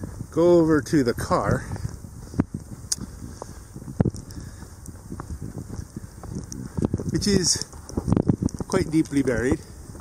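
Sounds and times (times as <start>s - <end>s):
footsteps crunching in snow: 0.0s - 10.0s
wind rumbling on microphone: 0.0s - 10.0s.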